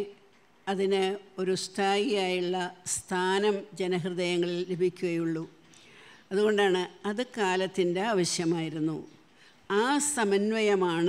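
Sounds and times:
elderly woman talking: 0.7s - 5.6s, 6.3s - 9.0s, 9.7s - 11.0s.

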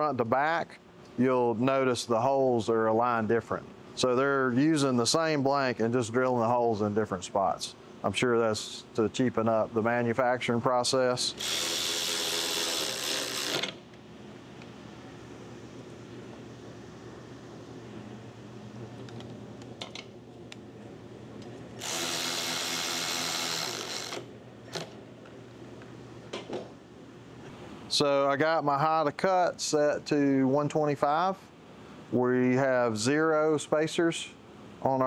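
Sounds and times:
cordless power tool whirring: 11.4s - 13.8s, 21.8s - 25.0s.

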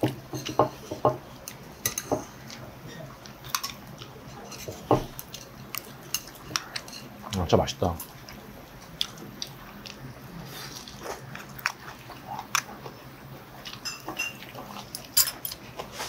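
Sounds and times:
chewing crispy food: 1.2s - 16.0s.

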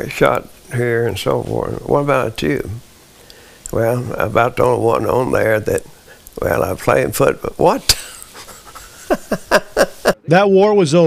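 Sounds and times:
elderly man laughing: 7.8s - 10.3s.

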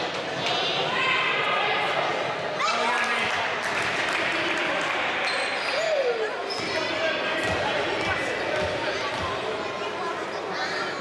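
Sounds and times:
voices echoing in hall: 0.0s - 11.0s
basketball bouncing on court: 6.6s - 9.4s.

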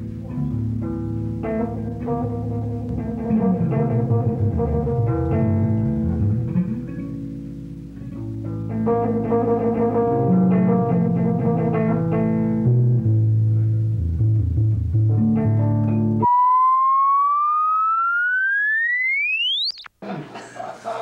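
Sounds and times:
amplified electric music: 0.0s - 19.9s
rising electronic whistling tone: 16.2s - 19.9s.

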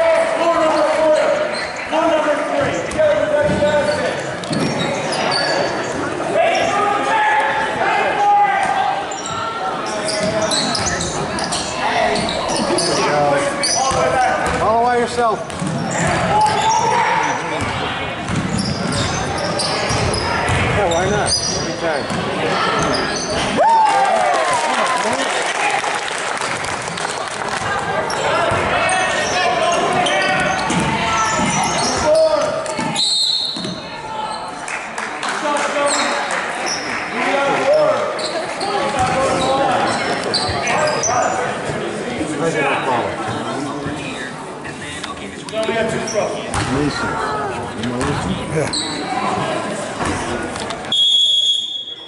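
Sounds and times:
voices calling out echoing: 0.0s - 52.0s.

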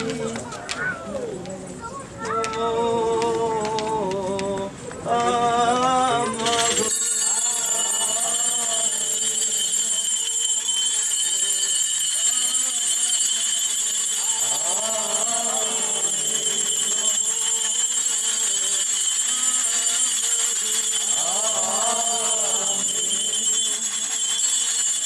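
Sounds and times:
voices chanting faintly: 0.0s - 24.3s
metal fans with bells jingling: 3.2s - 25.0s.

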